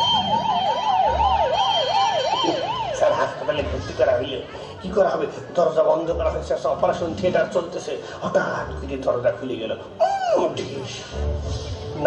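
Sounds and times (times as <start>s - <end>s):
person imitating a siren: 0.0s - 3.8s.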